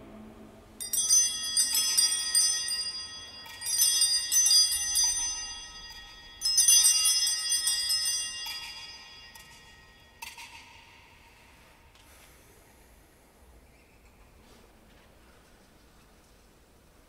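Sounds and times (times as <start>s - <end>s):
small bells jangling: 0.8s - 11.5s.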